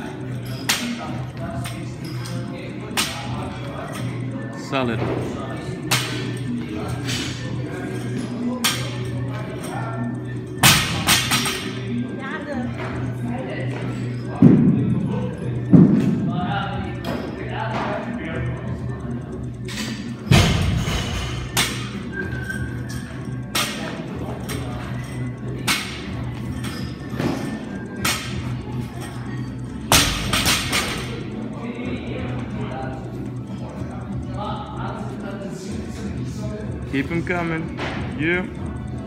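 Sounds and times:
background music: 0.0 - 39.0.

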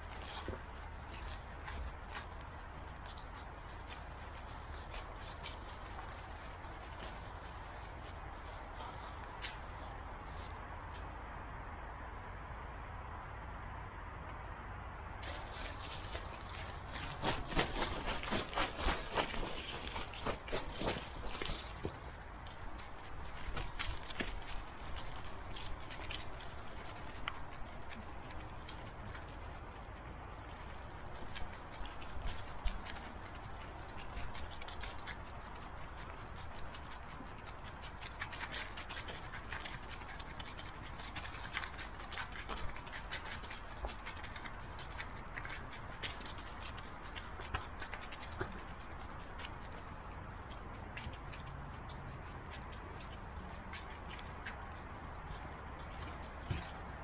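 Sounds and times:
dog paws crunching dry leaves: 15.2 - 57.0.

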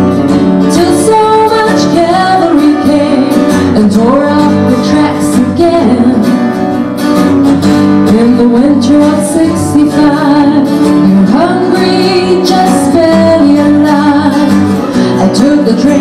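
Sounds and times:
acoustic guitars strummed: 0.0 - 16.0
person singing: 0.7 - 6.9, 8.0 - 16.0.

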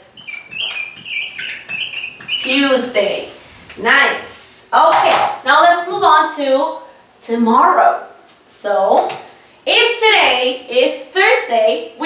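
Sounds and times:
marker squeaking on whiteboard: 0.0 - 3.0.

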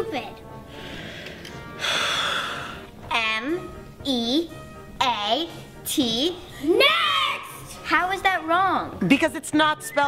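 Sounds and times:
faint background music: 0.0 - 10.0
person gasping breath: 0.7 - 2.9.

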